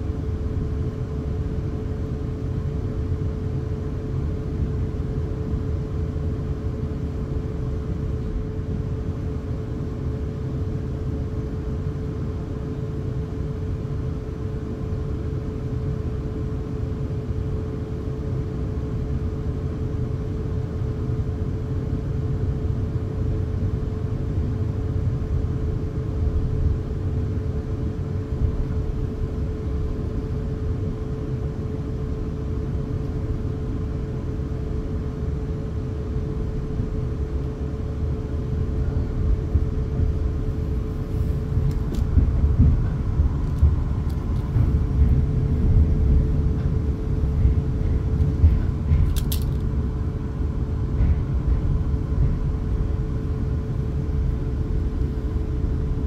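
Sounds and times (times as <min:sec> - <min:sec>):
constant hum: 0:00.0 - 0:56.0
train wheels rumbling on track: 0:24.0 - 0:56.0.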